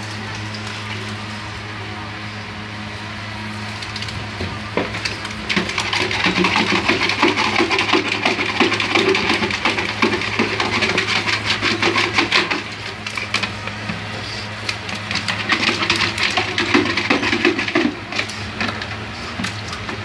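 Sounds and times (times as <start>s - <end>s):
plastic bucket scraping on tiled floor: 4.9s - 14.1s, 15.0s - 20.0s.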